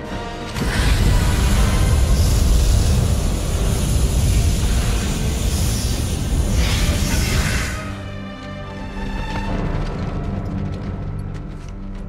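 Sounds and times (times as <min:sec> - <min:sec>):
film score music: 0:00.0 - 0:12.0
flamethrower blasting fire: 0:00.5 - 0:08.1.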